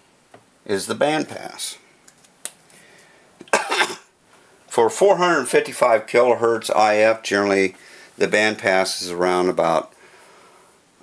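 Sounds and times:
man coughing: 3.5 - 4.1.

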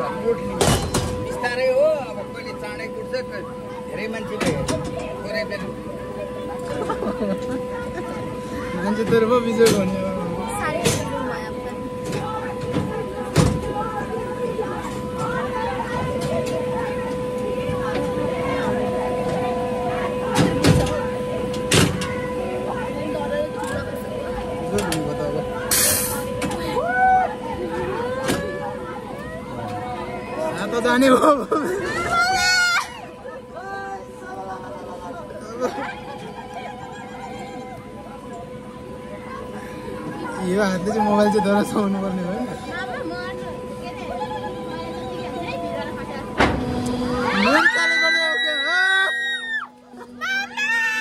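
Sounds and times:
electric humming tone: 0.0 - 51.0
faint chatter: 0.0 - 51.0
ride machinery clunk: 6.5 - 26.8, 42.4 - 47.6.

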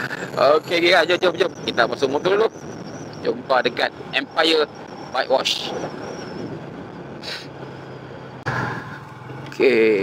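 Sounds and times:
road and wind noise: 0.0 - 10.0.

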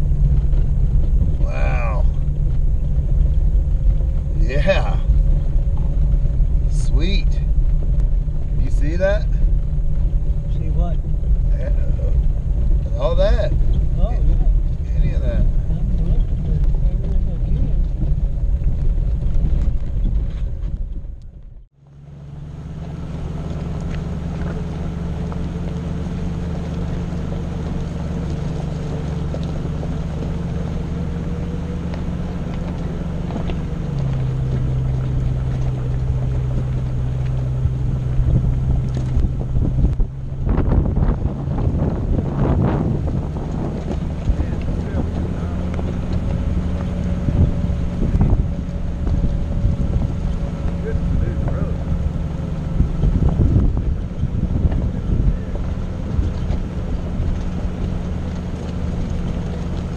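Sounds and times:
wind on microphone: 0.0 - 21.7, 32.0 - 59.9
engine and drivetrain rumble: 0.0 - 59.9.

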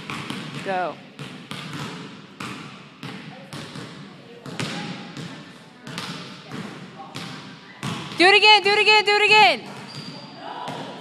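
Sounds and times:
basketball bouncing on wooden floor: 0.0 - 8.4.

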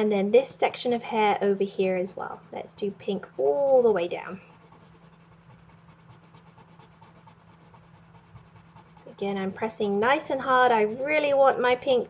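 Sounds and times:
low steady hum: 0.0 - 12.0
colored pencil scratching on paper: 3.5 - 11.6.

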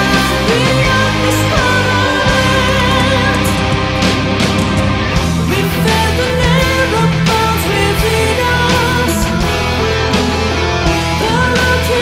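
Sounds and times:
woman singing lead: 0.0 - 4.4, 5.4 - 12.0
metal band playing live: 0.0 - 12.0.

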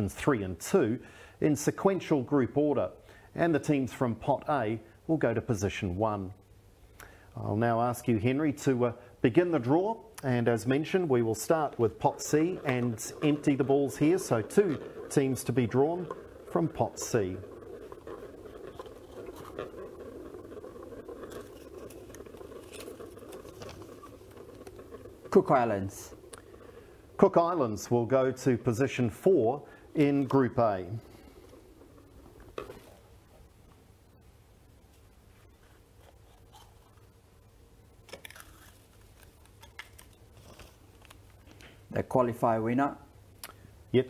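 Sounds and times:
room noise: 0.0 - 44.0
paper rustling: 10.8 - 27.2.

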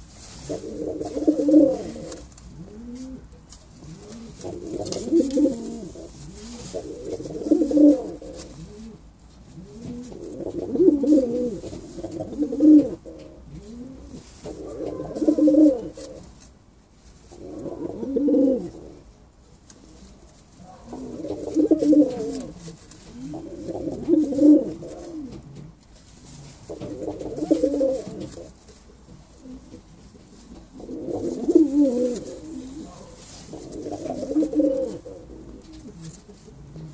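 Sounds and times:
pigeon cooing: 0.0 - 16.4, 17.3 - 19.2, 19.9 - 36.9.

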